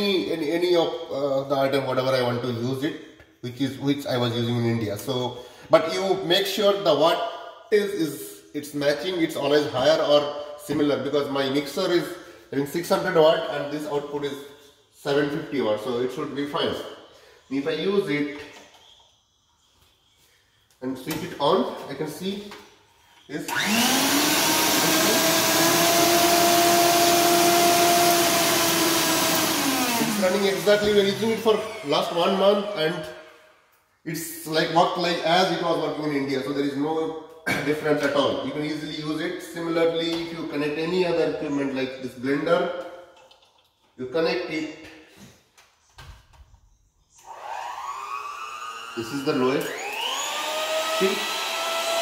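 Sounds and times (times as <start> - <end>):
mixer grinder motor whining: 23.4 - 33.2, 47.2 - 52.0.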